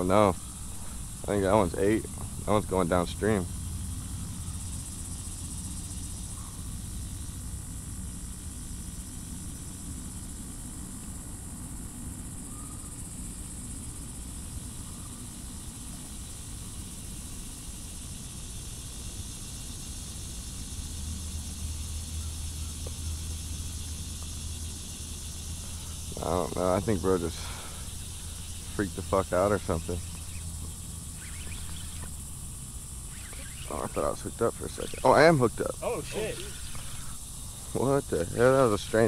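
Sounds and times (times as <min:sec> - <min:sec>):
high chorus of insects: 0:00.0 - 0:39.0
low steady rumble: 0:00.0 - 0:39.0.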